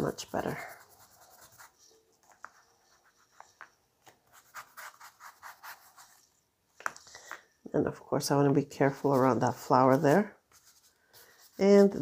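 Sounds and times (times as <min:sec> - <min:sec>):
foam tool rubbing on paper: 0:09.0 - 0:12.0.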